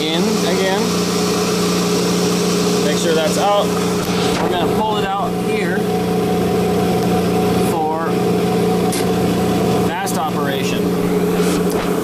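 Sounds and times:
surface grinder motor hum: 0.0 - 12.0.

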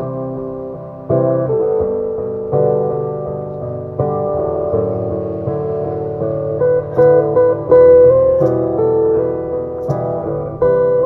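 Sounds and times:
acoustic guitar music: 0.0 - 11.0
sustained keyboard-like notes: 0.0 - 11.0.

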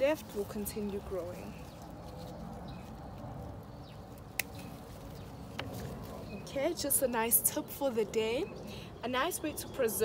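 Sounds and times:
bean leaves rustling: 0.0 - 7.9.

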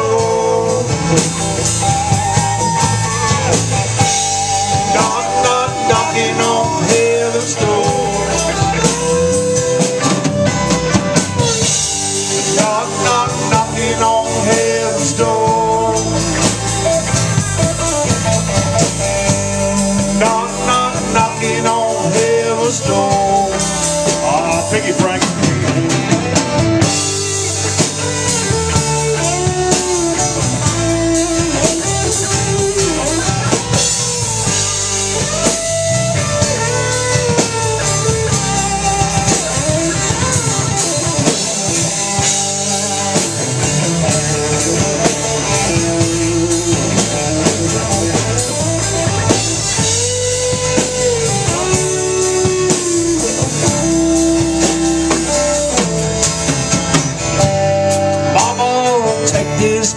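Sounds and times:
electric guitar lead with bending notes: 0.0 - 59.9
live blues band playing: 0.0 - 59.9.

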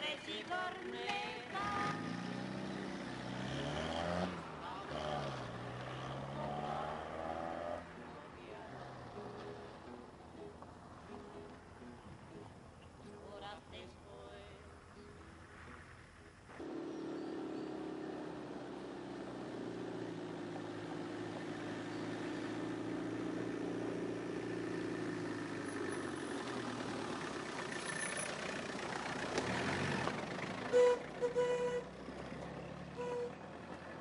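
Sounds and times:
car engine running: 16.6 - 34.0
car horn honks: 30.7 - 32.0, 32.9 - 33.4.

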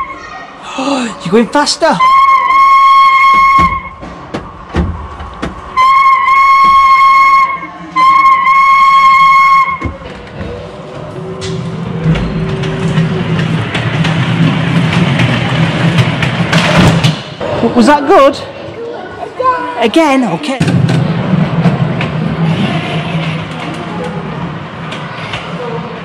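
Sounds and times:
steam locomotive whistle: 2.0 - 3.9, 5.8 - 9.8
low rumble of ride-on train: 2.1 - 17.4, 20.6 - 26.0.

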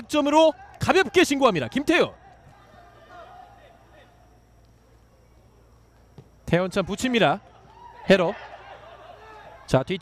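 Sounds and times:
distant players shouting: 0.0 - 9.8
stadium ambience hum: 0.0 - 10.0.

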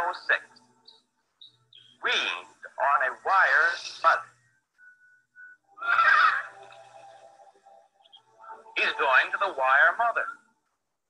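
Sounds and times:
faint steady tones: 0.0 - 11.0
monkey high-pitched cry: 5.8 - 6.6.

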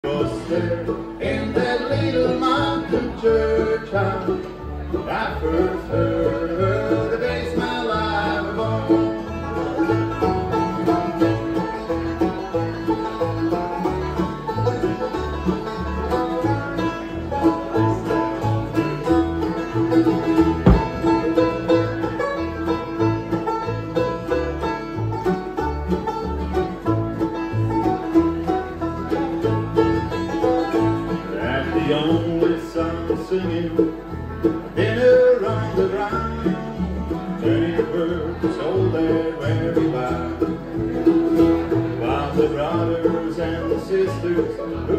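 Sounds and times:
acoustic guitar: 0.0 - 44.9
banjo: 0.0 - 44.9
mandolin: 0.0 - 44.9
plucked upright bass: 0.0 - 44.9.

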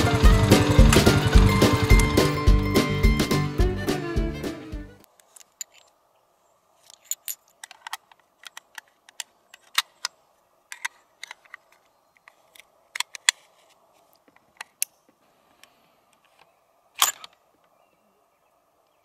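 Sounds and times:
cartridges clicking into magazine: 17.0 - 17.4.

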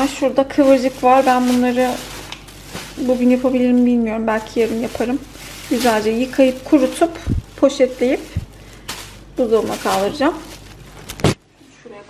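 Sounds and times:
plastic bags rustling: 0.0 - 11.6.

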